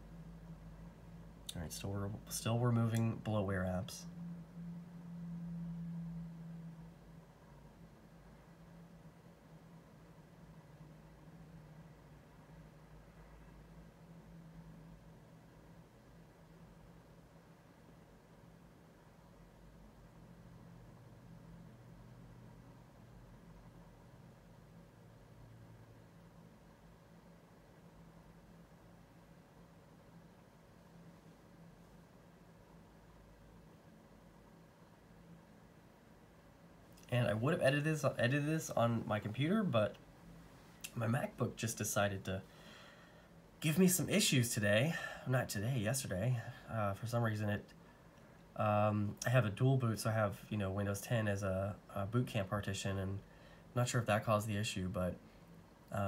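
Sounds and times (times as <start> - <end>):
faint low hum: 0.0 - 56.0.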